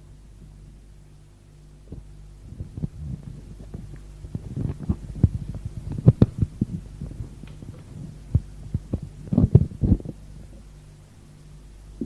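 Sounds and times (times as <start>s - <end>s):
mains hum: 0.0s - 12.0s.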